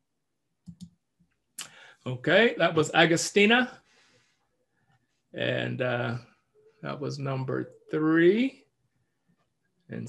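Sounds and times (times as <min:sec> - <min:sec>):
faint computer clicks: 0:00.6 - 0:01.0.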